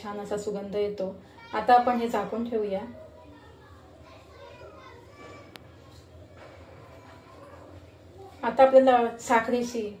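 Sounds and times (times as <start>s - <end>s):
faint children's voices: 0.0s - 10.0s.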